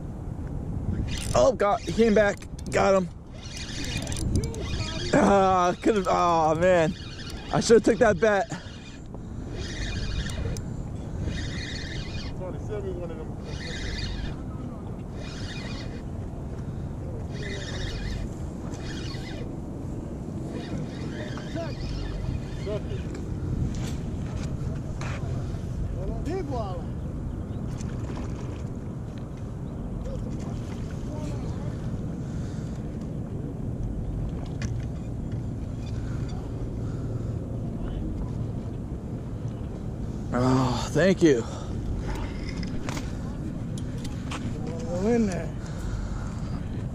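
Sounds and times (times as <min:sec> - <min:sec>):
wind rumbling on microphone: 0:00.0 - 0:46.9
fishing reel gears whirring: 0:00.9 - 0:24.8, 0:34.2 - 0:38.6, 0:39.2 - 0:46.9
fishing reel clicks: 0:01.0 - 0:12.4, 0:13.4 - 0:14.4, 0:15.1 - 0:16.1, 0:17.3 - 0:19.5.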